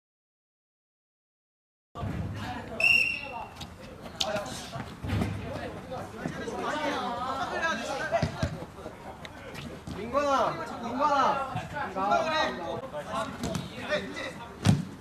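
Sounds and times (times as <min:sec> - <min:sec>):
short high whistle blast: 0:02.8 - 0:03.5.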